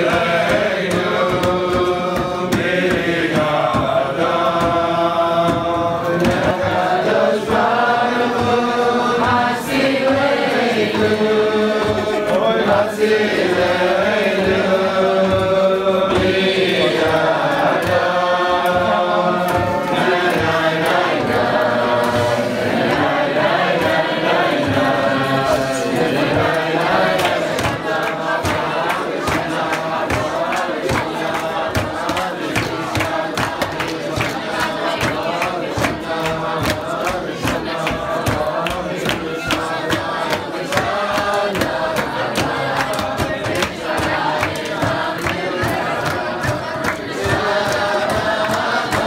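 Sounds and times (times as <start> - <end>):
group of young voices singing: 0.0 - 49.0.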